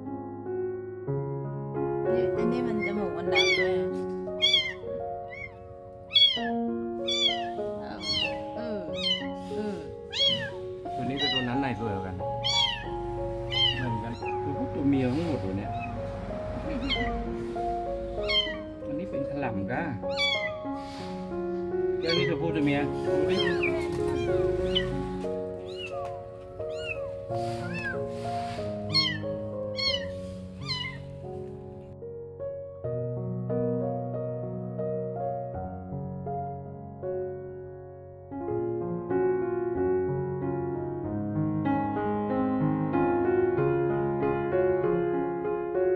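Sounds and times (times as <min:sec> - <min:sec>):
soft background piano music: 0:00.0 - 0:45.9
kitten mewing: 0:02.7 - 0:11.6, 0:12.3 - 0:14.6, 0:15.7 - 0:15.9, 0:16.6 - 0:17.2, 0:18.0 - 0:18.9, 0:20.0 - 0:20.7, 0:22.0 - 0:22.4, 0:23.1 - 0:31.2.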